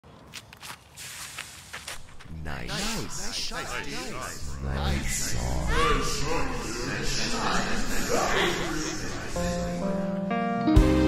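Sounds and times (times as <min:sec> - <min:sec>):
footsteps on concrete: 0:00.2 - 0:02.3.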